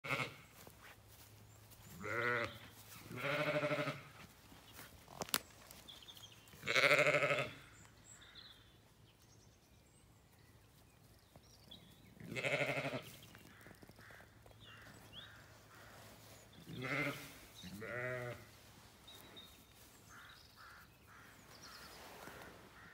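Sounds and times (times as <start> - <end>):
sheep bleating: 0.0 - 0.5, 2.0 - 4.2, 6.6 - 7.6, 12.2 - 13.1, 16.6 - 18.5.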